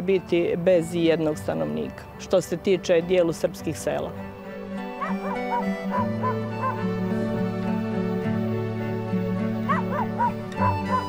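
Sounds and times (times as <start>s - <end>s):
instrumental background music: 0.0s - 11.0s
dog yipping: 5.0s - 6.8s, 9.7s - 11.0s.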